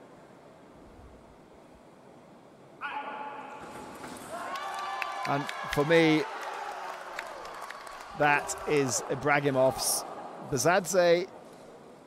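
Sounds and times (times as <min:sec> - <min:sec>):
fencer shouting: 0:02.8 - 0:03.7.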